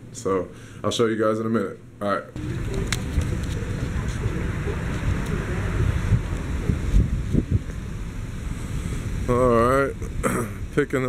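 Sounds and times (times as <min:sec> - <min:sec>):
wind buffeting microphone: 0:02.4 - 0:10.2.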